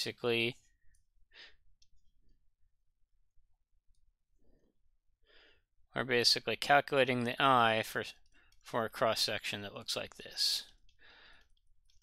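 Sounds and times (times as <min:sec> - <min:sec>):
faint breaths: 0:10.9 - 0:11.7.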